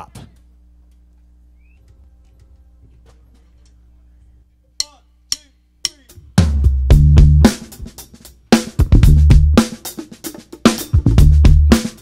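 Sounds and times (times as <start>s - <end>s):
faint stage noises: 0.0s - 6.4s
amplifier hum: 0.0s - 9.6s.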